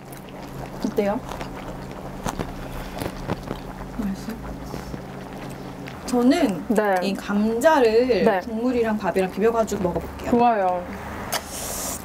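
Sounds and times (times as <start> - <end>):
person chewing food: 0.0 - 6.1
low hum: 0.0 - 11.2.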